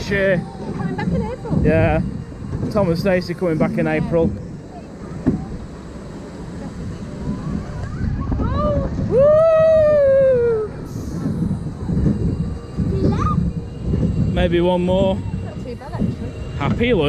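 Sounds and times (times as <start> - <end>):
roller coaster rumbling on track: 0.0 - 17.0
rising cry: 5.6 - 14.3.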